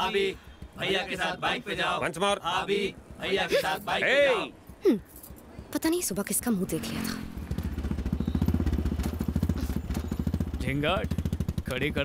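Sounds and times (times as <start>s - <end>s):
motorcycle engine running: 6.7s - 12.0s.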